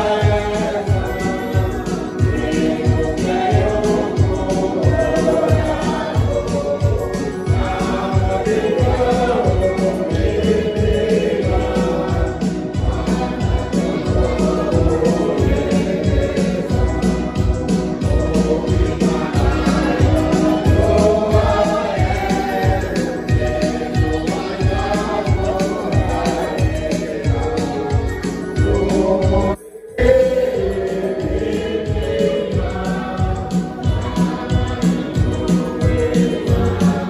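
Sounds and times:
choir singing a hymn: 0:00.0 - 0:37.0
electronic keyboard accompaniment: 0:00.0 - 0:37.0.

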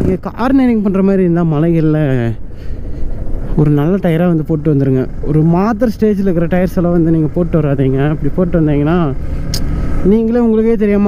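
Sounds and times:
man's voice: 0:00.0 - 0:02.4, 0:10.0 - 0:11.0
motorcycle engine running: 0:00.0 - 0:11.0.

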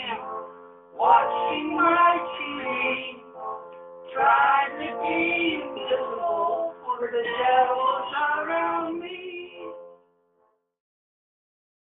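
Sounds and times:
song with singing from record: 0:00.0 - 0:10.0.

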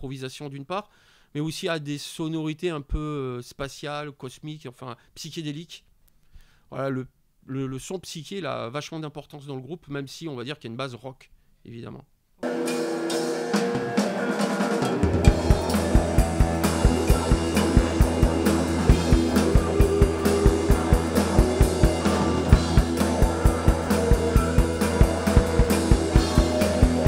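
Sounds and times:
electric guitar sustaining chords: 0:12.4 - 0:27.0
held low bass note: 0:15.3 - 0:27.0.

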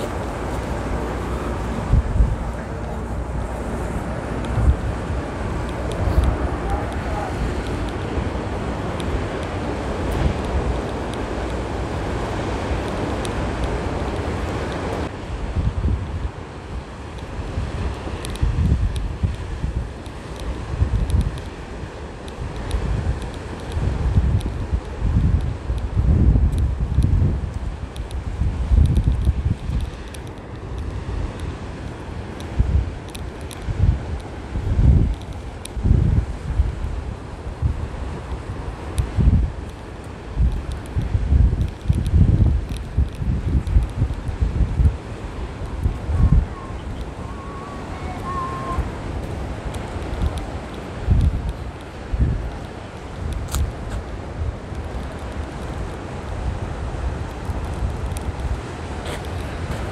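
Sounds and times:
surf washing on beach: 0:00.0 - 0:59.9
wind buffeting microphone: 0:00.0 - 0:59.9.

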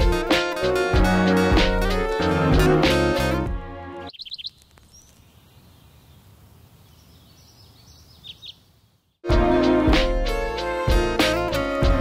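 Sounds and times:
loud music: 0:00.0 - 0:04.1, 0:09.2 - 0:12.0
outdoor background noise: 0:04.1 - 0:09.2
small bird chirping: 0:04.1 - 0:09.2.

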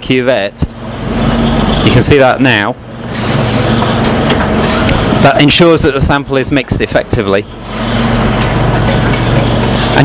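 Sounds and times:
low hum: 0:00.0 - 0:06.1
analyser motors running: 0:00.0 - 0:10.0.

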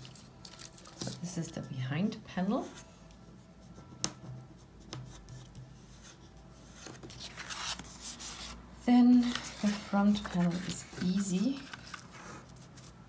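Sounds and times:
paper rubbing and sliding: 0:06.6 - 0:13.0.

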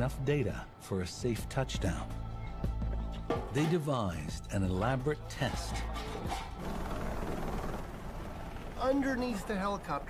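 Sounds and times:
helicopter rotor and engine: 0:06.6 - 0:10.0.

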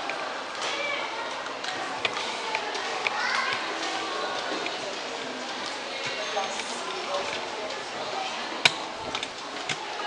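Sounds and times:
children's voices: 0:00.0 - 0:10.0
crowd voices hubbub: 0:00.0 - 0:10.0.

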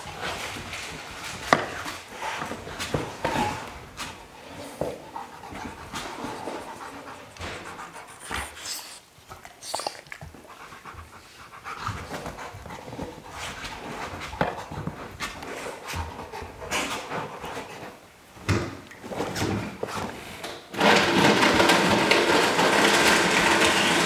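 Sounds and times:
dog panting: 0:04.1 - 0:18.0.

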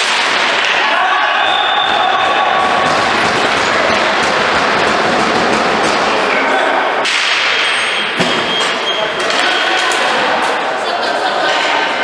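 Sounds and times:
ball hockey rink noise: 0:00.0 - 0:12.0.

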